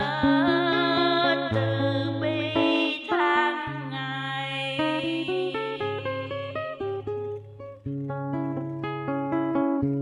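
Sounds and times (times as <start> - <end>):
acoustic guitar plucking: 0.0 - 10.0.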